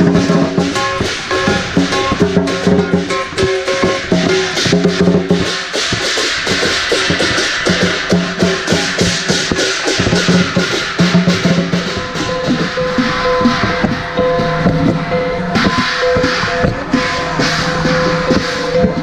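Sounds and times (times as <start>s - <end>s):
big drum beating: 0.0s - 19.0s
cymbals crashing: 0.0s - 19.0s
gongs ringing: 0.0s - 19.0s.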